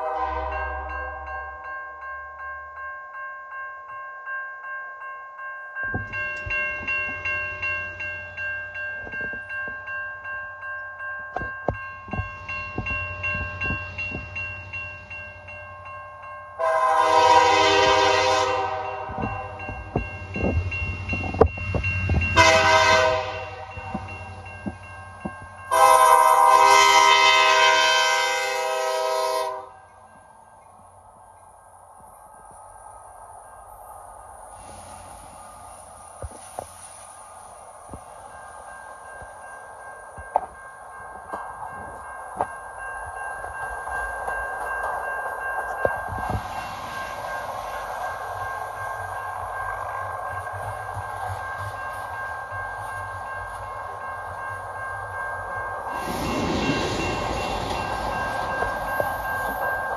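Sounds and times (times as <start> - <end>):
train air horn blasts: 0.0 - 1.2, 16.6 - 19.6, 22.4 - 23.9, 25.7 - 29.8
freight train rumble: 0.0 - 2.8, 5.8 - 59.9
crossing warning bell ringing: 0.0 - 59.9
rail clicks: 5.8 - 29.0, 29.8 - 59.9.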